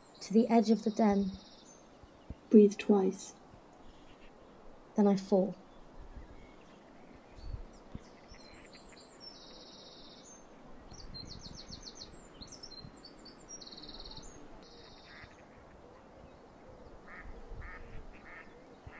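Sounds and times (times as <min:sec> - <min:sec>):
bird trills and chirps: 0:00.0 - 0:04.4, 0:05.0 - 0:18.9
low bird calls: 0:03.8 - 0:04.6, 0:05.6 - 0:18.9.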